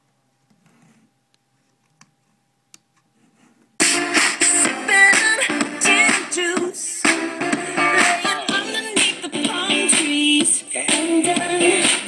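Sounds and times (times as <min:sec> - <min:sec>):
loud music from speaker: 0:03.8 - 0:12.0.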